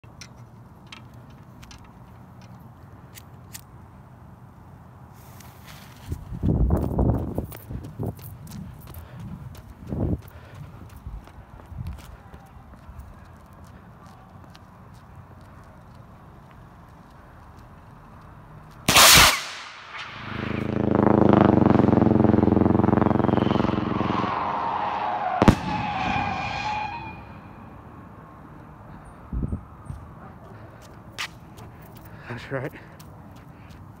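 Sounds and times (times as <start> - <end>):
sharp pop: 18.9 - 20.6, 25.4 - 26.1
firework bursting: 18.9 - 27.2
buzzing firework crackle: 18.9 - 27.3.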